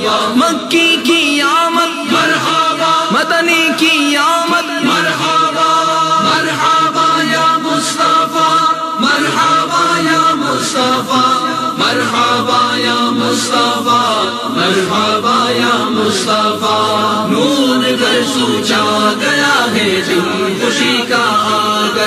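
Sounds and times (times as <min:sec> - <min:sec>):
chorus chanting devotional song: 0:00.0 - 0:22.0.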